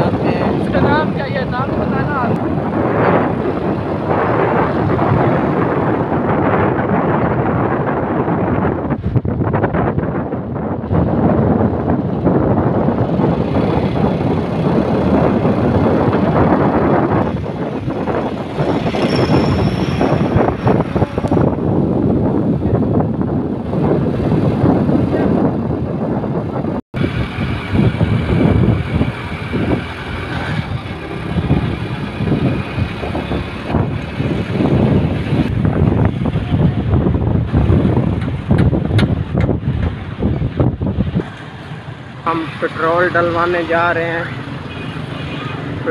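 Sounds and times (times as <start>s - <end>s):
engine and road noise: 0.0s - 45.9s
wind buffeting microphone: 0.0s - 45.9s.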